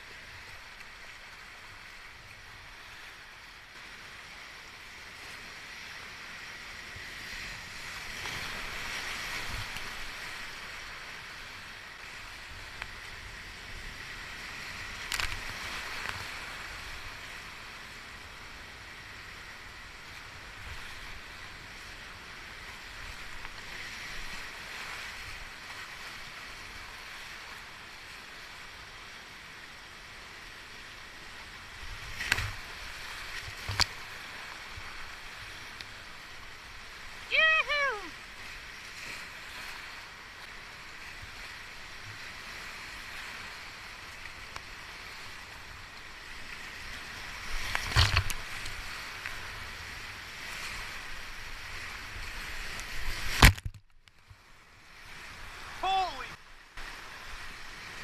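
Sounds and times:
paddle splashes: 31.8s - 58.0s
whitewater rapids roaring: 36.9s - 38.3s, 55.4s - 58.0s
person shouting: 37.3s - 38.2s, 55.8s - 56.4s
knocks against kayak hull: 53.3s - 53.9s.

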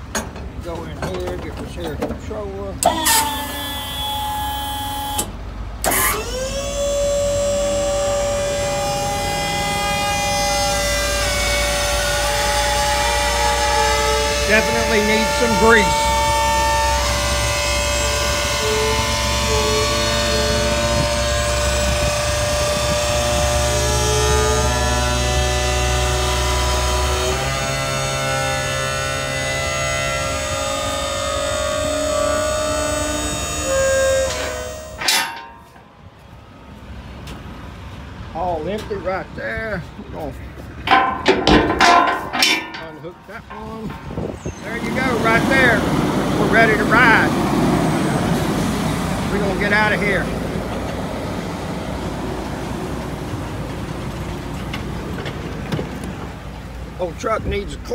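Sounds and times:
hoist pivots squealing and groaning: 0.0s - 35.9s, 38.3s - 56.4s
low hum: 40.4s - 54.7s
knocks and clicks: 40.9s - 44.4s.

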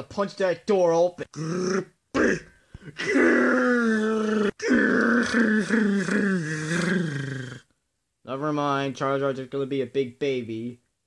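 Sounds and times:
person making drawn-out wordless cries: 1.2s - 7.6s.

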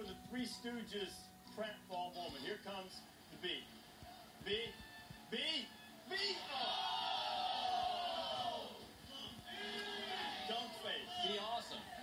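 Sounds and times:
voices shouting and cheering: 4.0s - 12.0s.

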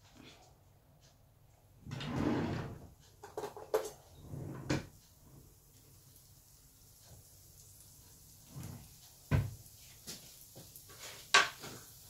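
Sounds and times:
drawer sliding open: 1.9s - 2.9s, 4.2s - 4.9s
clicks and knocks of objects: 3.2s - 4.1s.

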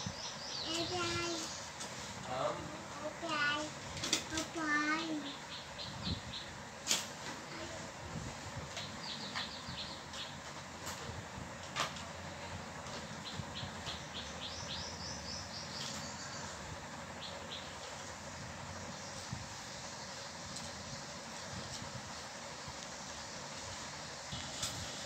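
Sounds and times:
low background noise: 0.0s - 25.0s
bird chirping: 13.2s - 16.6s.

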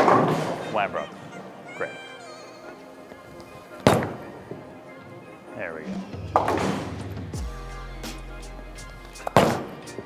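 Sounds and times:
background music: 0.0s - 10.0s
bowling ball thud on wooden lane: 6.3s - 6.9s.

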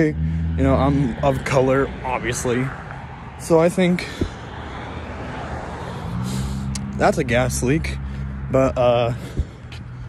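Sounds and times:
car passing: 0.0s - 10.0s
road noise: 0.0s - 10.0s.

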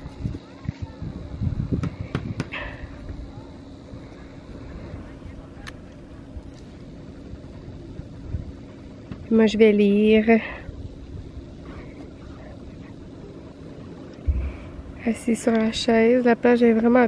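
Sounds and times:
wind on microphone: 0.0s - 15.9s.

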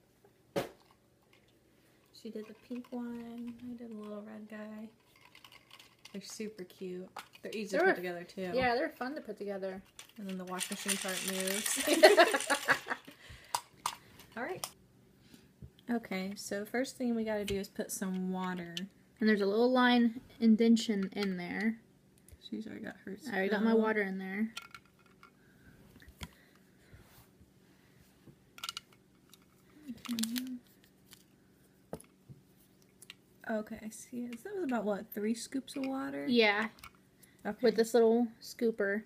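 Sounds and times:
plastic toy clicks: 10.0s - 12.9s, 28.6s - 29.4s
plastic scoop clicking on plastic: 28.6s - 30.5s.

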